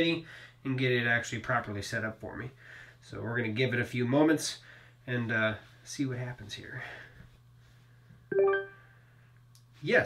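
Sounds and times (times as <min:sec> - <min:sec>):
smart speaker chime: 0:08.3 - 0:08.8.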